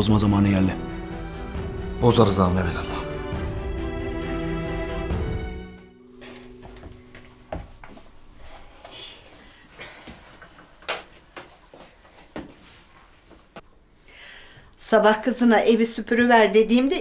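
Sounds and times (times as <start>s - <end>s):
background music: 0.0s - 8.3s.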